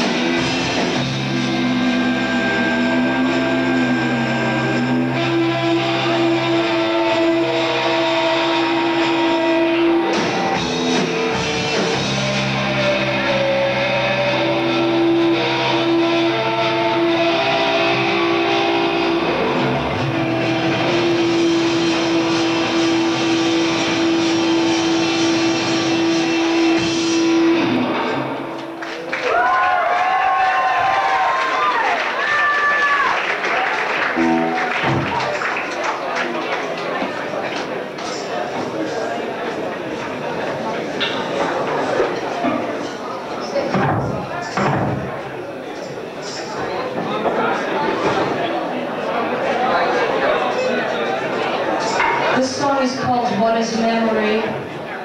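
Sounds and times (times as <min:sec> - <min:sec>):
electric guitar drone: 0:00.0 - 0:28.8, 0:34.2 - 0:35.2
live rock band: 0:00.0 - 0:29.2, 0:34.1 - 0:35.3
electric guitar held note: 0:34.2 - 0:35.2.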